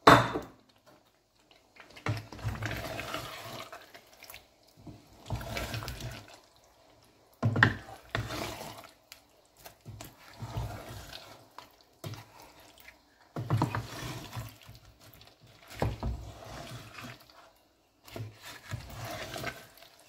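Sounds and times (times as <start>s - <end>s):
wet squelching and sloshing stew: 0.6s - 20.0s.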